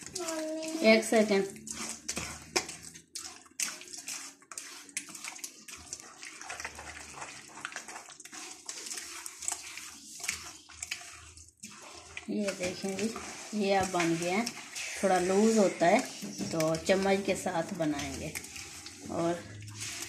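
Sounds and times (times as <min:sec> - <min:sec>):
hand squelching through wet batter: 0:00.0 - 0:20.0.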